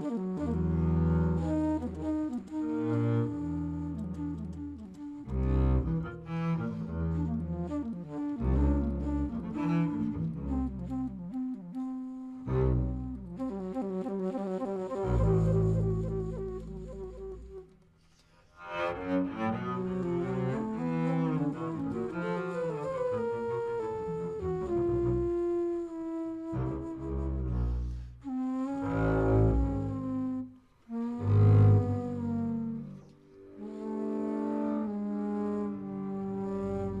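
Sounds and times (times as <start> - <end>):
double bass: 0.0 - 14.0, 14.8 - 17.7, 18.8 - 37.0
flute: 0.0 - 37.0
saxophone: 0.0 - 37.0.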